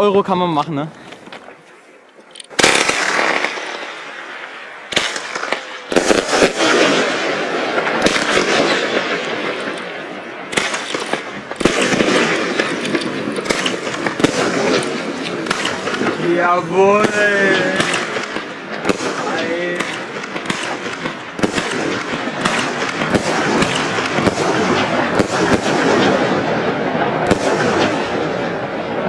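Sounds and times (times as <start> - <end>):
firework crackling: 2.5 - 29.0
firework shots: 2.5 - 29.0
firework launch bang: 4.9 - 9.8.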